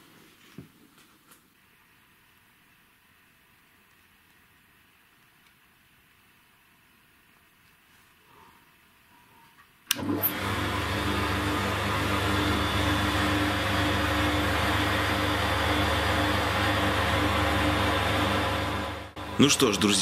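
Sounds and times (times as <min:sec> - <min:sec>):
disc sander motor humming: 0:10.0 - 0:20.0.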